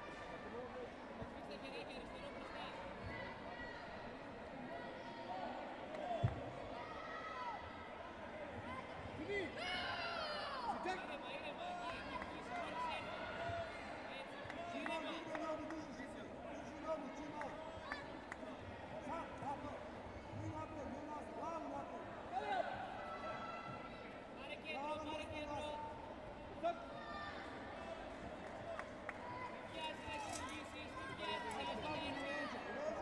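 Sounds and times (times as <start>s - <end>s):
echoing crowd voices and shouts: 0.0s - 33.0s.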